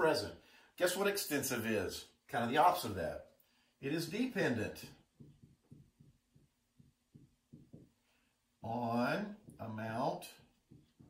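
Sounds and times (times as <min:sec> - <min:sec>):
marker strokes on whiteboard: 0:03.9 - 0:08.6, 0:09.4 - 0:11.0.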